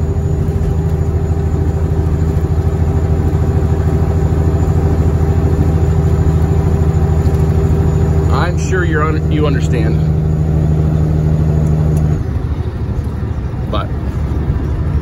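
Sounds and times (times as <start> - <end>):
diesel truck engine drone: 0.0 - 15.0.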